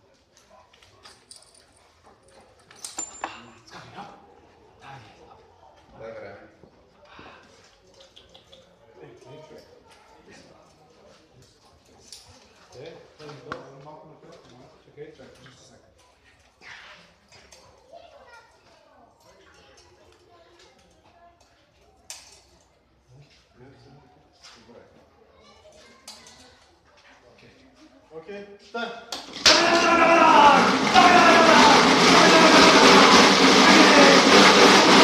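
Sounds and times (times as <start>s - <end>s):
faint background chatter: 0.0s - 29.4s.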